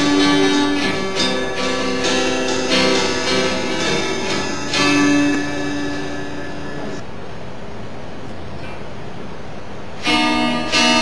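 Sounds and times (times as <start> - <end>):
band final chord ringing: 0.0 - 7.0
guitar: 0.0 - 7.0, 9.8 - 11.0
steady hiss: 0.0 - 11.0.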